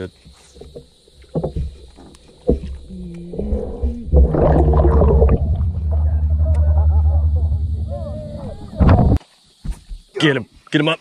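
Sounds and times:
boat motor humming underwater: 0.6 - 9.2
rush of water: 3.6 - 7.0.

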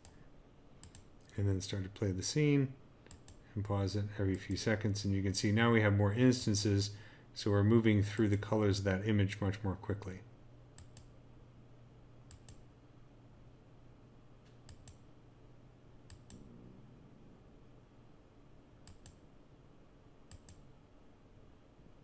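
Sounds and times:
low steady hum: 0.0 - 22.0
computer mouse clicks: 0.8 - 1.3, 3.0 - 3.4, 10.8 - 11.2, 12.3 - 12.7, 14.5 - 15.1, 16.1 - 16.4, 18.8 - 19.2, 20.3 - 20.7.

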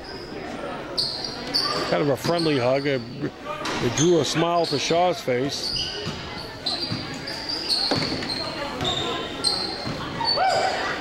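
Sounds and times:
sneakers squeaking on floor: 0.0 - 3.1, 3.7 - 11.0
basketball bouncing on wooden floor: 7.9 - 9.0.

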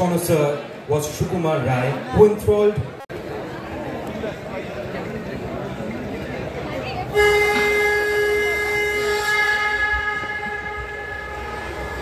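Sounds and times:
horn-like note: 7.1 - 12.0
musical notes: 7.1 - 12.0.

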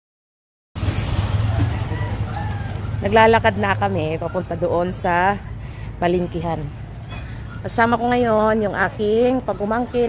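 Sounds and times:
street ambience rumble with hiss: 0.8 - 10.0.

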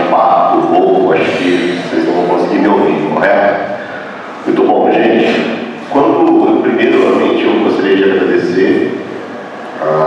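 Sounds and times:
man speaking into a microphone: 0.0 - 9.0, 9.8 - 10.0.

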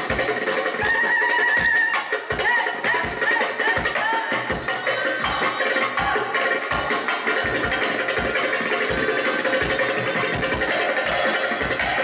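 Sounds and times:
live band music: 0.0 - 12.0
steady drum beat: 0.0 - 12.0.

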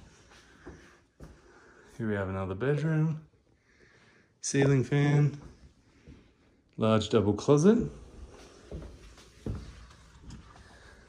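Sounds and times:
soft footsteps on tile floor: 0.0 - 3.1, 3.8 - 6.7, 7.4 - 11.0.

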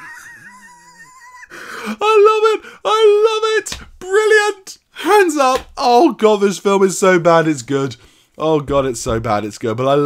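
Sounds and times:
man laughing in a squeal: 0.0 - 1.5.

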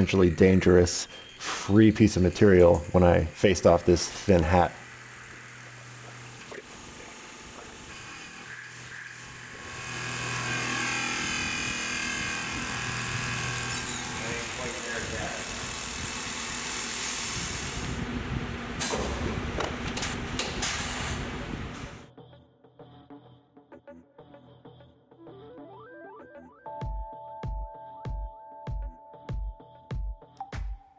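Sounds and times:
milling machine cutting metal: 0.0 - 18.0.

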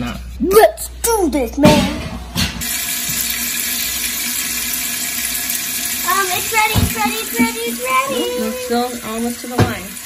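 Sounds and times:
water pouring into metal pot: 2.6 - 10.0.

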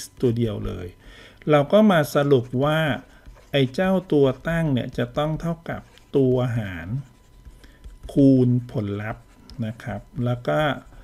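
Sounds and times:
man talking: 0.0 - 7.1, 8.0 - 11.0
stylus scratching on tablet screen: 0.0 - 11.0.

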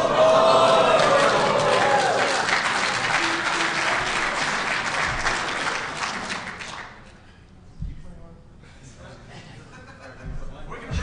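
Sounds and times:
people whooping: 0.0 - 4.7
audience applauding: 0.0 - 7.2.

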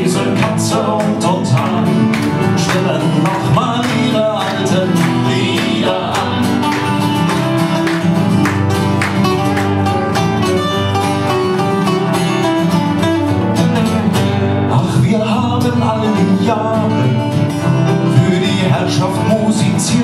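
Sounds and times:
acoustic guitars playing: 0.0 - 20.0.

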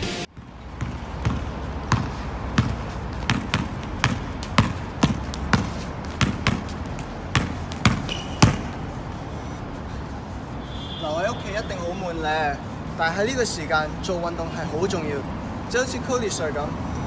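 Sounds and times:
basketball bouncing on tiled floor: 0.3 - 8.9.

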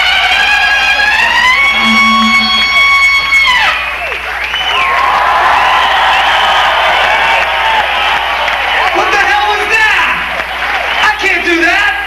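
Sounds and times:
crowd cheering and shouting: 0.0 - 12.0
high held rock note: 1.1 - 3.7.

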